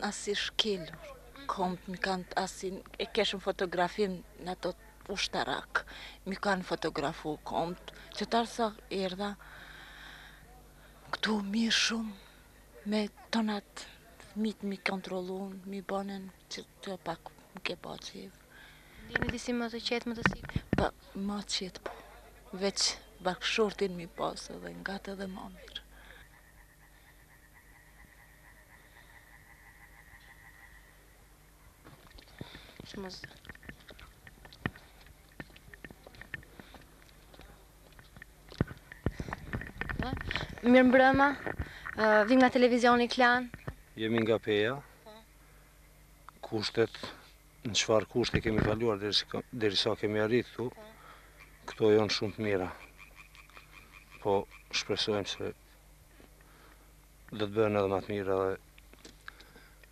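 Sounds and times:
man speaking: 0.8s - 1.5s, 44.0s - 45.0s, 46.4s - 50.8s, 51.7s - 52.8s, 54.2s - 55.6s, 57.3s - 58.6s.

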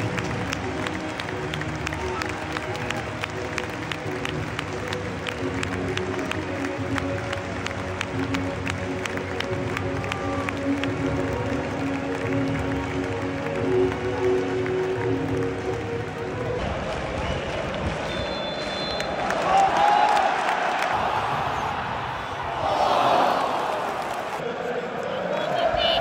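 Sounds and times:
crowd clapping: 0.0s - 26.0s
stadium crowd noise: 0.0s - 26.0s.

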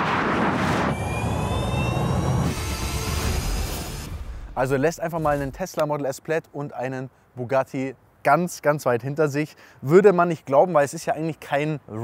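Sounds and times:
wind and tyre noise: 0.0s - 3.5s
high whine rising in pitch: 0.0s - 5.0s.

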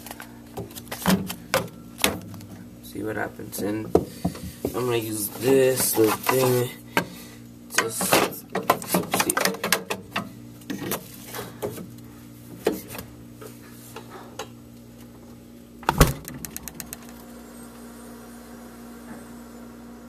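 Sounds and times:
freezer humming: 0.0s - 20.0s
loud thump: 15.8s - 16.4s.

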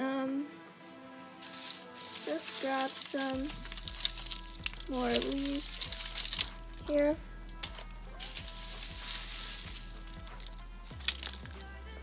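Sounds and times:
background music with steady beat: 0.0s - 12.0s
dry leaves crackling and rustling: 1.4s - 12.0s.

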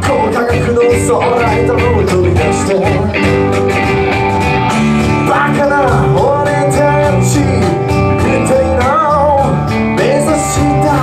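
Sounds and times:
man singing: 0.0s - 3.6s, 5.0s - 11.0s
electric guitars and bass: 0.0s - 11.0s
steady drum beat: 0.0s - 11.0s.

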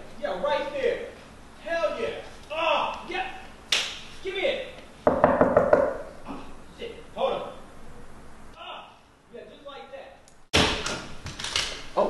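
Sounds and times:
rapid knocks on a wall: 5.1s - 6.0s.

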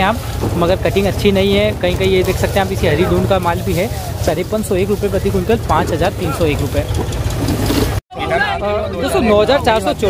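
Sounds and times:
vehicle engine idling: 0.0s - 8.0s.

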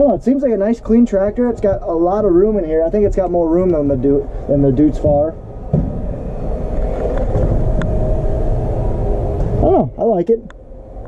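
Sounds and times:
low rumble of hall crowd: 0.0s - 10.0s
faint hum: 0.0s - 11.0s.

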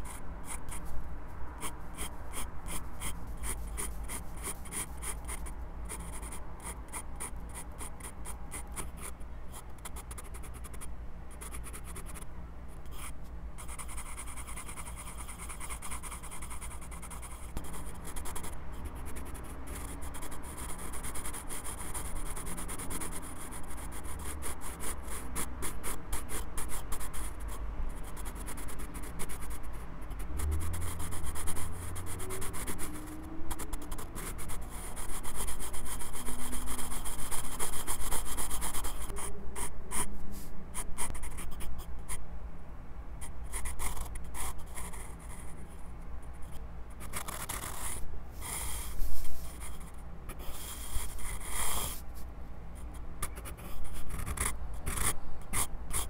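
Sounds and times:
pencil scratching on paper: 1.6s - 9.2s, 12.8s - 29.6s, 30.6s - 41.8s, 47.0s - 52.2s, 53.2s - 56.0s.

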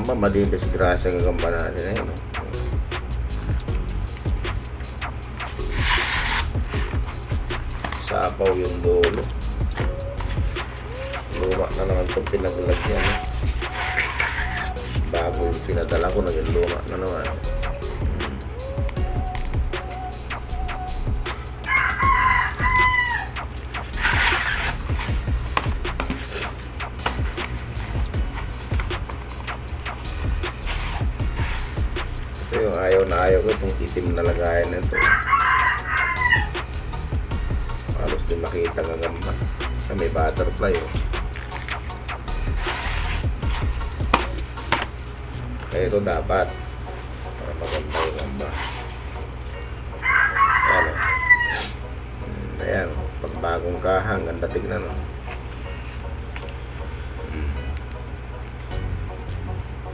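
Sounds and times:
music with steady beat: 0.0s - 49.8s
rooster crowing: 21.6s - 24.5s, 34.9s - 36.7s, 49.9s - 51.8s.

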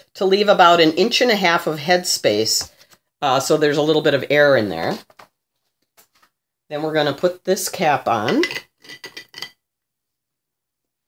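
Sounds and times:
metal cap clinking on glass bottle: 8.2s - 9.6s.

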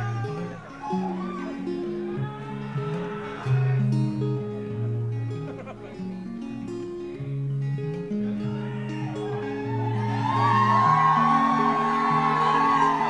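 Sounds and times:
acoustic guitar picking: 0.0s - 13.0s.

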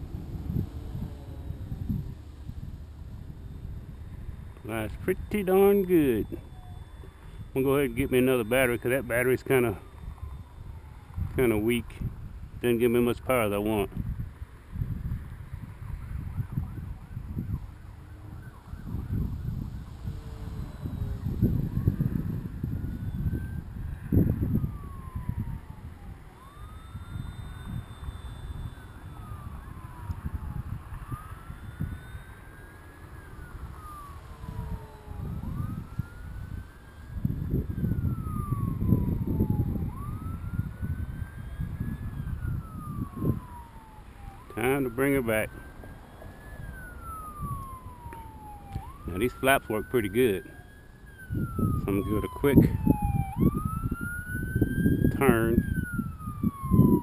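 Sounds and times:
distant siren wailing: 0.0s - 57.0s
wind rumbling on microphone: 0.0s - 57.0s.

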